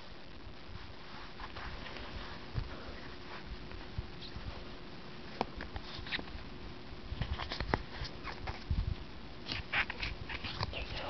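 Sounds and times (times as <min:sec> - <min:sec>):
trading cards scraping and flicking: 0:05.4 - 0:06.4, 0:07.2 - 0:08.7, 0:09.4 - 0:11.0.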